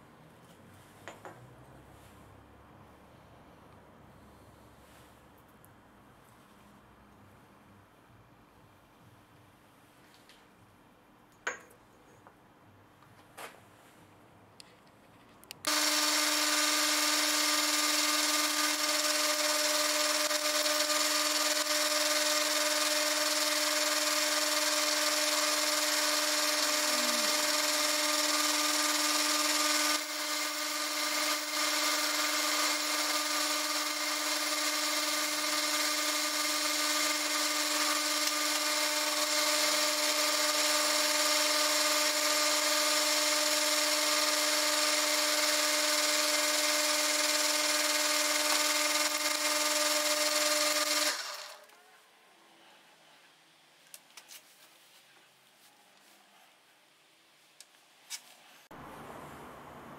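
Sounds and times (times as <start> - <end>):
metal lathe humming: 15.7 - 51.6.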